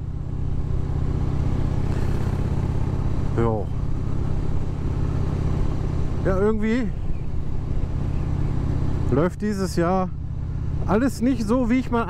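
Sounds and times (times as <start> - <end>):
motorcycle engine cruising: 0.0 - 12.0
road and wind noise: 0.0 - 12.0.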